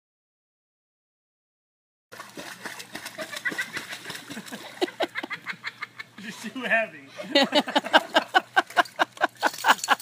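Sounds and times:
water splashing in pool: 0:02.1 - 0:05.2.

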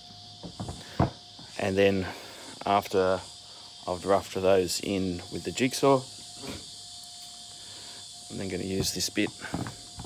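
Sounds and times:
faint steady tone: 0:00.0 - 0:10.0
high-pitched hiss: 0:00.0 - 0:10.0.

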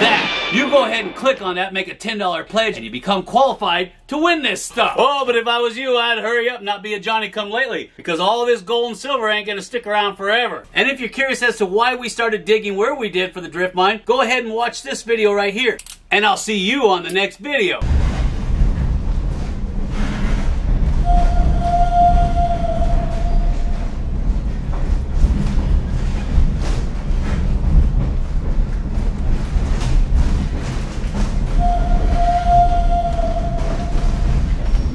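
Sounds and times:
mine cart rumbling on rails: 0:17.8 - 0:34.9
metallic wheel squeal: 0:21.0 - 0:23.9, 0:31.6 - 0:34.9.

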